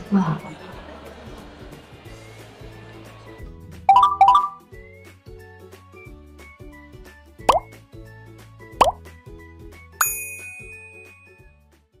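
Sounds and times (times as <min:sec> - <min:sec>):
background music with steady beat: 0:00.5 - 0:11.4
pop sound effects: 0:03.8 - 0:04.6, 0:07.4 - 0:07.7, 0:08.8 - 0:09.0
bell-like ding: 0:10.0 - 0:11.5.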